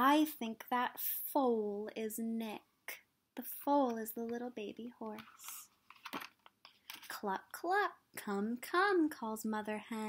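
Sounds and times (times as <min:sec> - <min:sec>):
paper page turning: 0:05.2 - 0:07.2.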